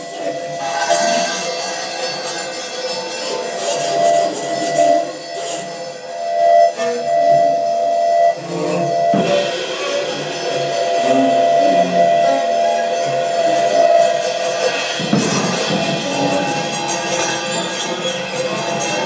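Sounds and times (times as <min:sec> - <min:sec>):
metallic percussion strokes: 0:00.0 - 0:19.0
sharp percussive hit: 0:08.5 - 0:19.0.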